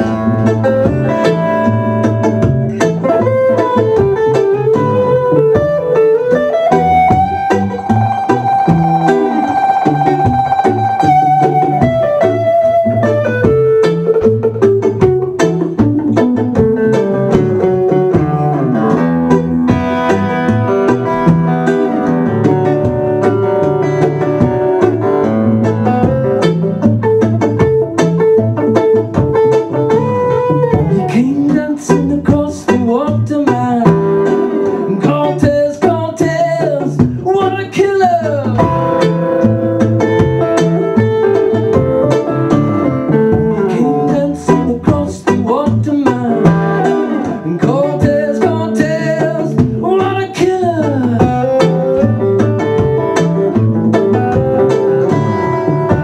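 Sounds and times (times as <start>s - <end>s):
acoustic guitar playing: 0.0s - 56.0s.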